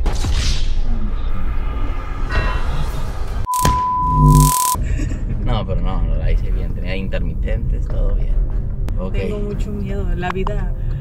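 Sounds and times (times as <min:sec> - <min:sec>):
electronic beep: 0:03.5 - 0:04.8
low buzz: 0:03.5 - 0:04.8.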